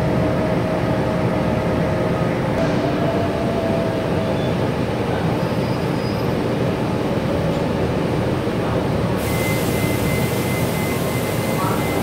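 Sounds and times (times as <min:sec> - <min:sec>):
diesel bus engine: 0:00.0 - 0:12.0
hiss: 0:09.2 - 0:12.0.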